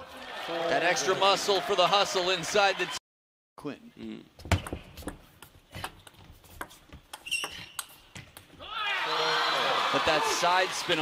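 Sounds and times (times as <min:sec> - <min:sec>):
high squeak: 0:07.2 - 0:08.0
man commentating: 0:09.8 - 0:11.0.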